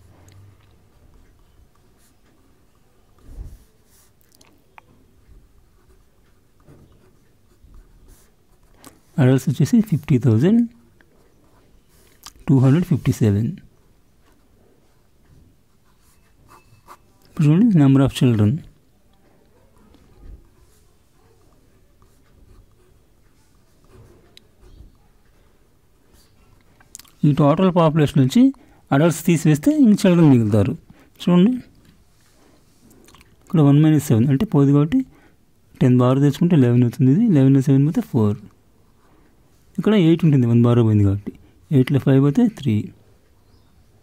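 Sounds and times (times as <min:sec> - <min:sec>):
pen scratching on paper: 0:06.9 - 0:09.1, 0:15.8 - 0:17.1, 0:22.0 - 0:24.2.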